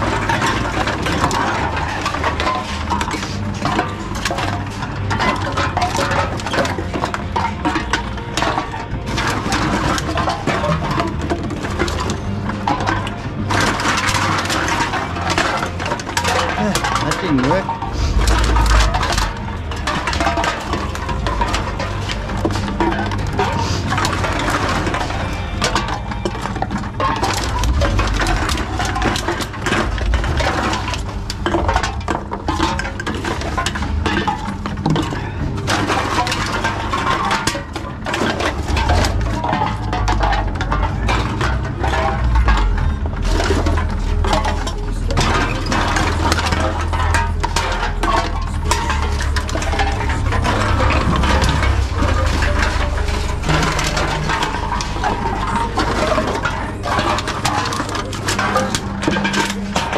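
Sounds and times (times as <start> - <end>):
cans and bottles clattering: 0.0 - 59.9
low machine hum: 0.0 - 59.9.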